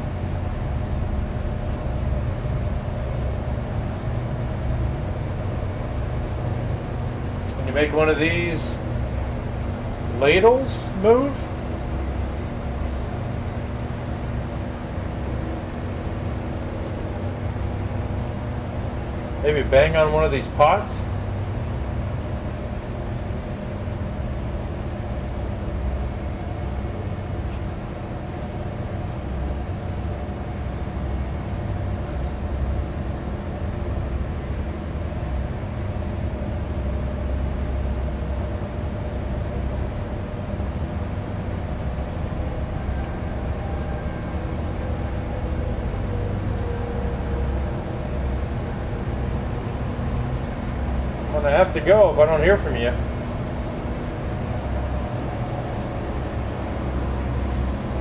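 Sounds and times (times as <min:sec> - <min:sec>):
kitchen machinery humming: 0:00.0 - 0:58.0.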